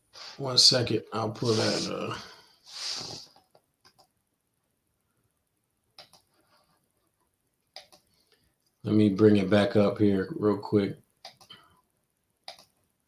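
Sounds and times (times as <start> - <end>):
faint clicks: 6.0 - 6.4, 7.7 - 8.8, 11.2 - 11.6, 12.4 - 12.8.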